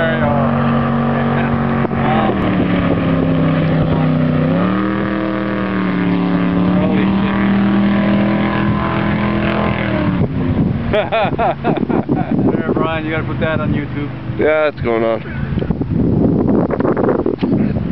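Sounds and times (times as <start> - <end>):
jet boat engine speeding past: 0.0 - 16.1.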